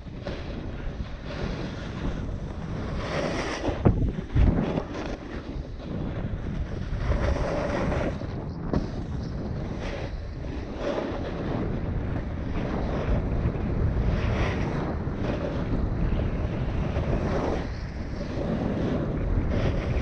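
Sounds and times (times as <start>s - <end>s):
wind rushing over microphone: 0.0s - 20.0s
ski edges scraping snow: 0.1s - 20.0s.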